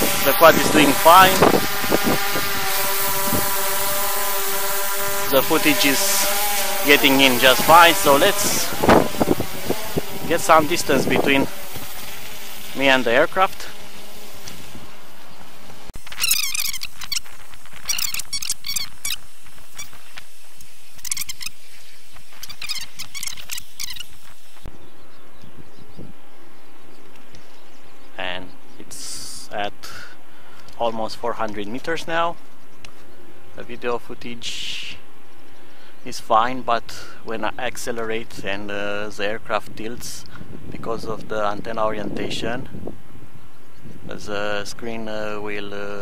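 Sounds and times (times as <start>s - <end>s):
quadcopter propellers buzzing: 0.0s - 29.5s
sped-up voice squeaky chirps: 16.1s - 17.3s, 17.9s - 19.2s, 21.0s - 21.6s, 22.4s - 24.2s.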